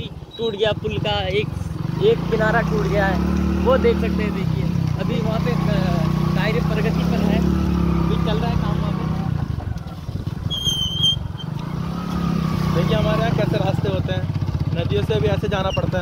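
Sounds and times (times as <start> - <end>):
high whistle-like call: 10.5 - 11.4.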